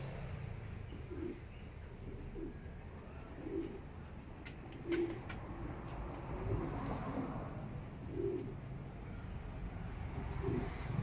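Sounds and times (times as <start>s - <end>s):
pigeon cooing: 0.8s - 8.8s, 10.0s - 11.0s.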